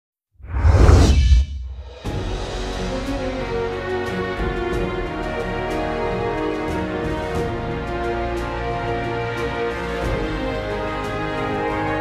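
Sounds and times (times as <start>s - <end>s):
whoosh with deep rumble: 0.4s - 2.7s.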